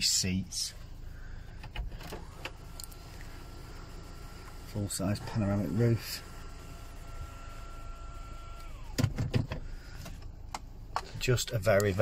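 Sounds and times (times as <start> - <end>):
electric motor whining: 2.1 - 9.0.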